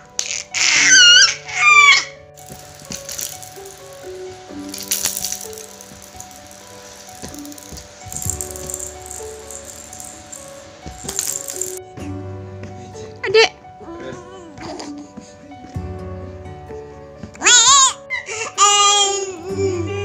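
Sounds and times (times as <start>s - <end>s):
gentle background music: 0.0s - 20.0s
baby's toy rattle shaken: 2.4s - 11.8s.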